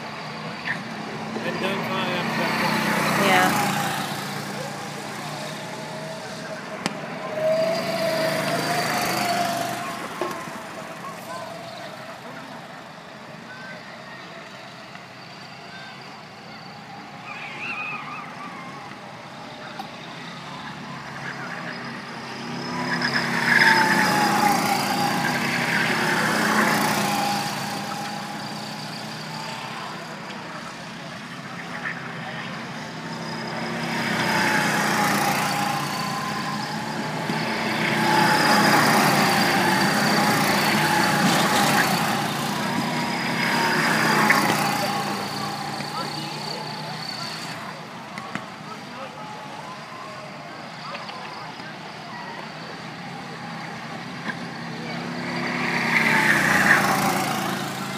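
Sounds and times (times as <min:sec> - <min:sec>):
go-kart engines whining: 0:00.0 - 0:57.9.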